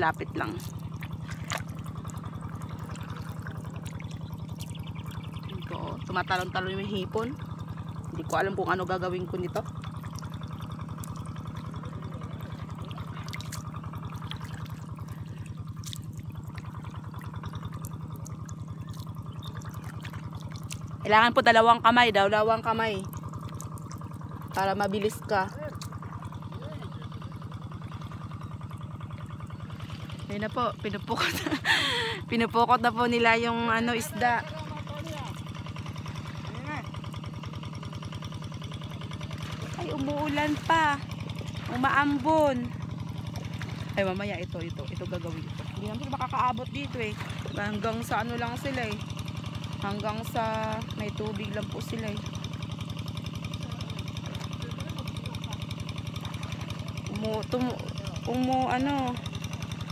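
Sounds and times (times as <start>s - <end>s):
low chugging engine drone: 0.0s - 59.9s
shrimp splashing in shallow water: 0.0s - 59.9s.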